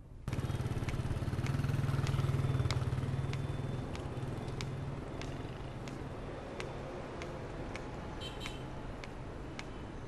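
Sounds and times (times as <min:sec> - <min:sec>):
motorbike engine passing: 0:00.3 - 0:05.7.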